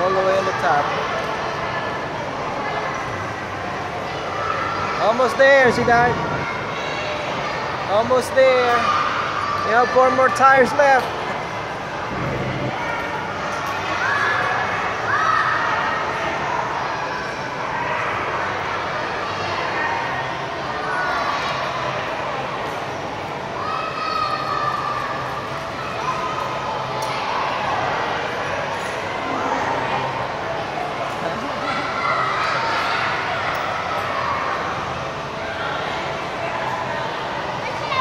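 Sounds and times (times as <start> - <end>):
distant voices chattering: 0.0 - 38.0.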